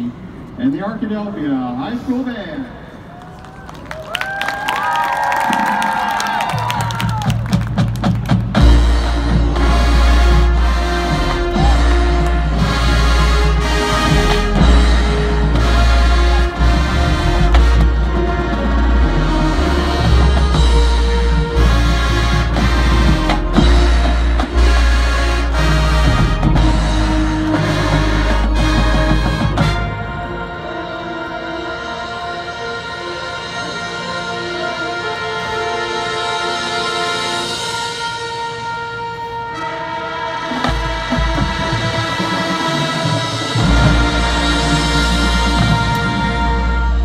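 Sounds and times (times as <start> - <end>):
marching band playing: 3.9 - 47.0
percussion hits: 6.6 - 30.4, 40.5 - 47.0.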